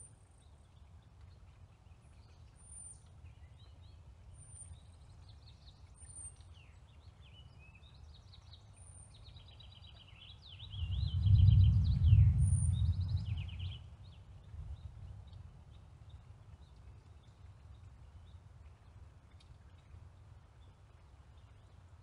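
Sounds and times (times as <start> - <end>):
songbirds chirping and trilling: 0.0 - 22.0
low rumble: 10.7 - 13.8.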